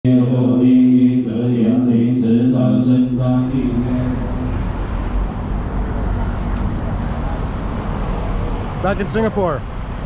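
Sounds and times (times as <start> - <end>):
city road traffic: 0.1 - 10.0.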